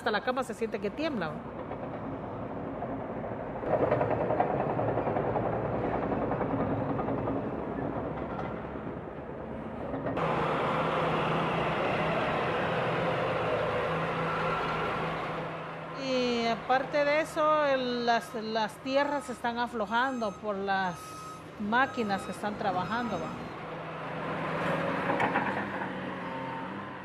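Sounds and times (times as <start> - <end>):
diesel machinery engines running: 0.0 - 27.0.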